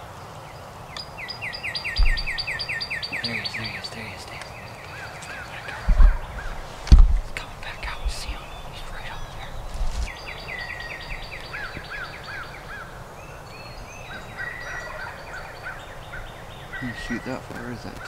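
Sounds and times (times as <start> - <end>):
low bumps: 2.0 - 2.5, 5.7 - 10.2
turkey yelping: 14.1 - 17.4.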